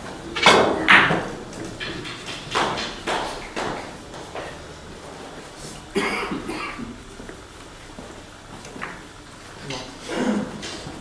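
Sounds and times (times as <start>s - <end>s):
person coughing: 5.9s - 7.0s, 10.0s - 10.6s.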